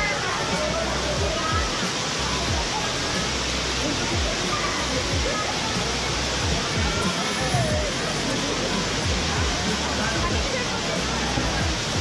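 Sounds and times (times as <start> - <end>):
faint voices of people: 0.0 - 12.0
waterfall rushing: 0.0 - 12.0.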